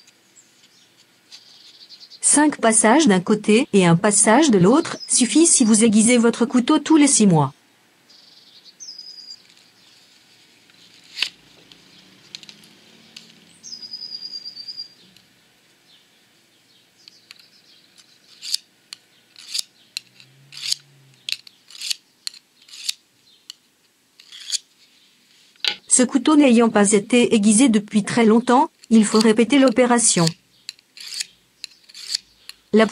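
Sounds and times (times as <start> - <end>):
knife sharpener scraping blade: 18.2 - 18.7, 19.3 - 23.0, 24.2 - 24.7, 28.8 - 32.6.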